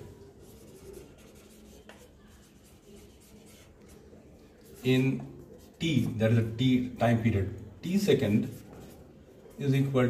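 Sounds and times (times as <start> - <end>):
marker pen writing on whiteboard: 0.0 - 6.6, 7.9 - 10.0.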